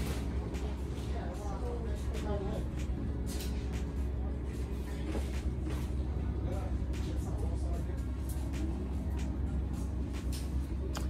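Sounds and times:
faint background voices: 0:00.0 - 0:11.0
steady low rumble: 0:00.0 - 0:11.0.

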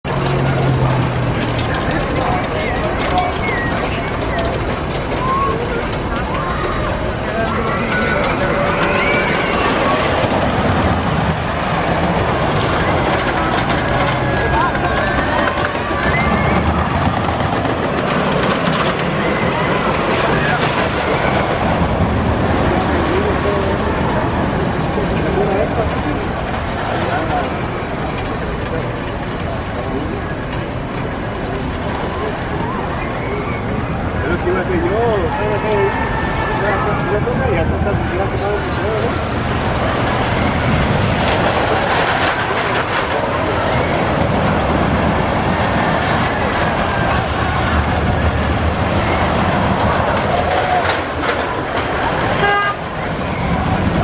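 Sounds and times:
crowd chatter: 0:00.0 - 0:54.0
roller coaster train on track: 0:00.0 - 0:54.0.

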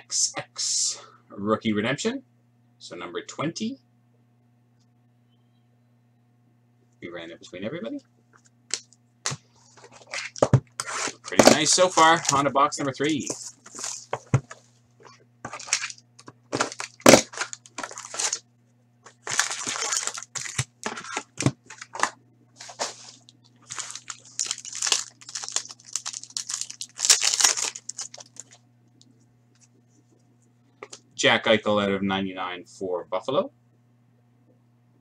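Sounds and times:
low electrical hum: 0:00.0 - 0:35.0
foil packs crinkling and tearing: 0:09.8 - 0:14.4, 0:15.5 - 0:18.4, 0:19.1 - 0:28.6.

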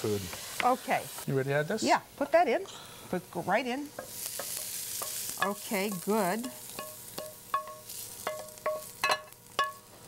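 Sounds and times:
wooden spoon knocking on skillet: 0:03.9 - 0:09.9.

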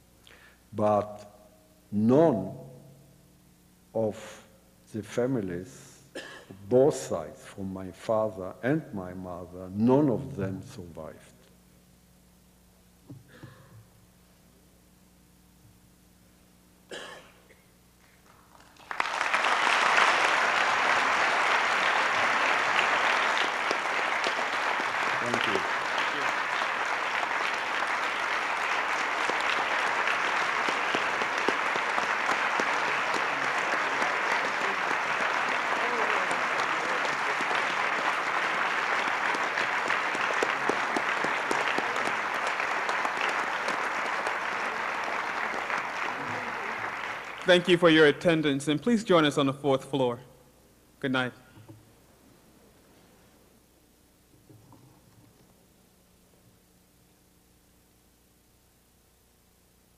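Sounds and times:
audience applauding: 0:18.3 - 0:48.3.

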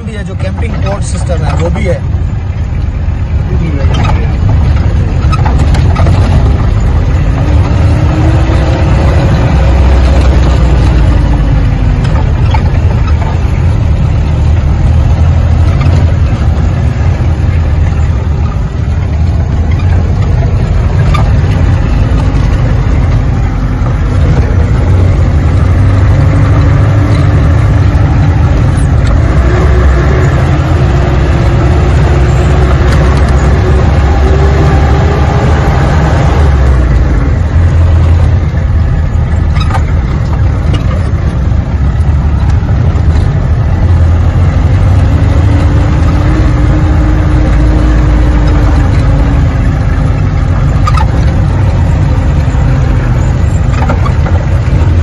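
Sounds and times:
car engine under load: 0:00.0 - 0:55.0
knocks and rattles: 0:03.7 - 0:55.0.

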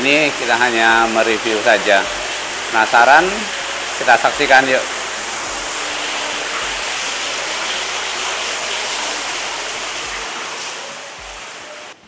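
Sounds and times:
water pouring into pool: 0:00.0 - 0:12.0.

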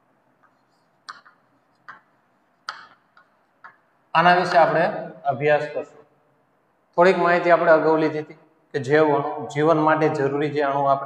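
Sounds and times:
chalk tapping and scraping on board: 0:00.3 - 0:04.7.

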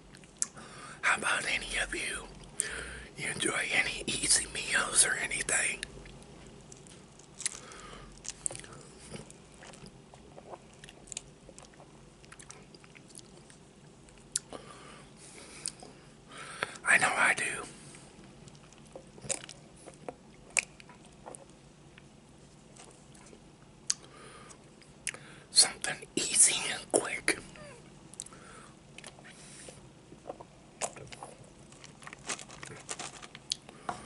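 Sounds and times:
man whispering: 0:01.0 - 0:02.4, 0:03.0 - 0:05.9, 0:16.8 - 0:17.8, 0:25.5 - 0:27.7
close chewing of food: 0:06.0 - 0:14.6, 0:18.3 - 0:25.2, 0:30.1 - 0:34.0.

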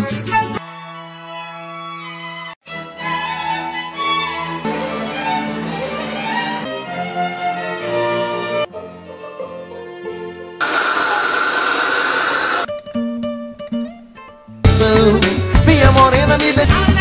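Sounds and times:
violin music: 0:00.0 - 0:09.3
instrumental music: 0:00.0 - 0:10.6, 0:12.7 - 0:17.0
blowtorch flame hissing: 0:10.6 - 0:12.7
loud music: 0:14.7 - 0:17.0.

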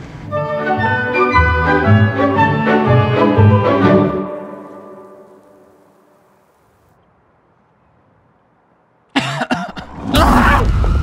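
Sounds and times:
person coughing loudly: 0:09.2 - 0:09.9.

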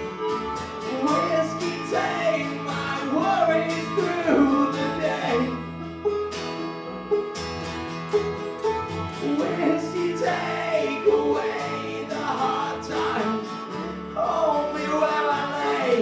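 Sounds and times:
bluegrass band playing: 0:00.0 - 0:16.0
man singing: 0:00.8 - 0:05.6, 0:09.2 - 0:16.0.

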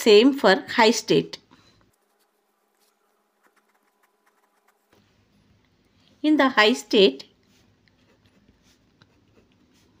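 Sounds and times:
pen scratching on paper: 0:01.9 - 0:05.0, 0:07.5 - 0:10.0.

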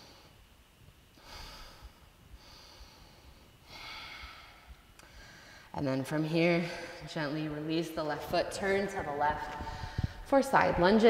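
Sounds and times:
woman breathing softly: 0:01.2 - 0:05.8, 0:09.6 - 0:10.3.

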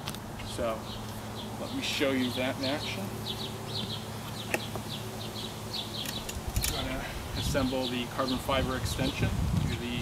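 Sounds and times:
small bird chirping: 0:00.4 - 0:08.6.

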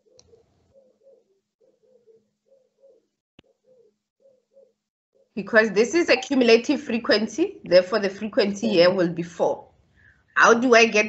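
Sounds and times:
dove cooing: 0:00.0 - 0:04.8.

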